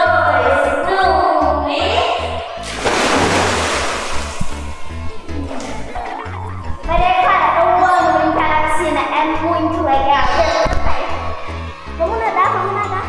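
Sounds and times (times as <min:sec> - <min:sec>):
upbeat background music: 0:00.0 - 0:13.0
children splashing into pool: 0:02.6 - 0:04.9
water churning: 0:02.6 - 0:05.0.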